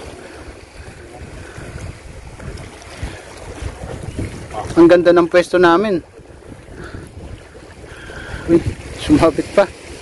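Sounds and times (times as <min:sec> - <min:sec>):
sea washing: 0:00.0 - 0:10.0
wind buffeting microphone: 0:00.0 - 0:10.0.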